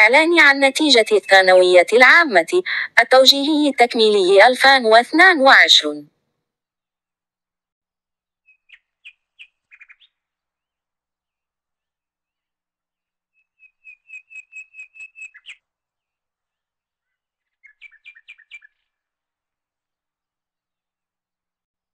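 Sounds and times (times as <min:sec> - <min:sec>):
bird chirping: 0:08.5 - 0:10.2, 0:13.4 - 0:15.6, 0:17.0 - 0:19.0.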